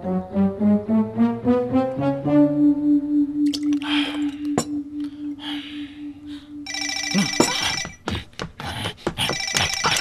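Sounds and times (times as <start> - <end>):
telephone ringing: 6.7 - 8.0, 9.3 - 10.0.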